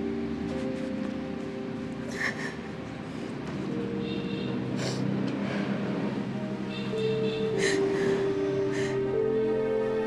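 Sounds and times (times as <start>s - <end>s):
sustained low musical chord: 0.0s - 10.0s.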